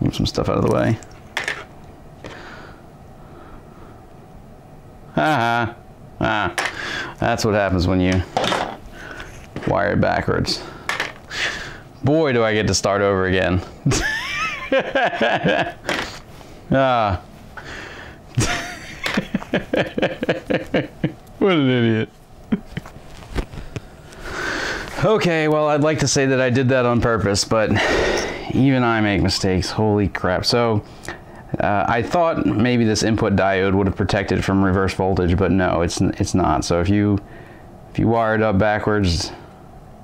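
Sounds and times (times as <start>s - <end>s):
man laughing: 5.2s - 6.6s, 13.8s - 16.1s, 18.3s - 23.0s.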